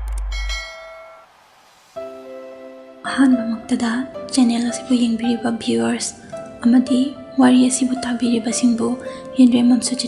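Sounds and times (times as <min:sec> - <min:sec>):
bright bell chime: 0:00.3 - 0:01.3.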